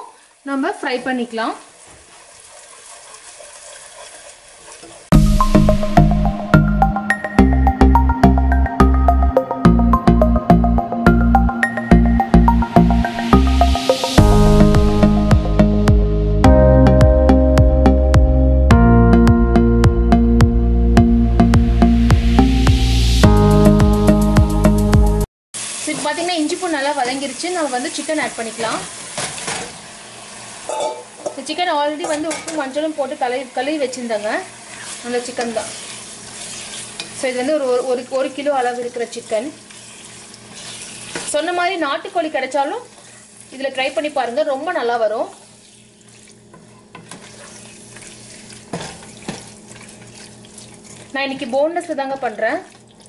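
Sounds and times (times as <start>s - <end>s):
paste sizzling in oil: 0.0s - 5.2s, 25.6s - 31.6s, 32.6s - 41.4s, 42.4s - 51.6s
wooden spatula scraping pot: 1.8s - 5.1s, 46.6s - 51.0s
wavering pitched sound: 5.1s - 25.2s
background music: 5.1s - 25.3s.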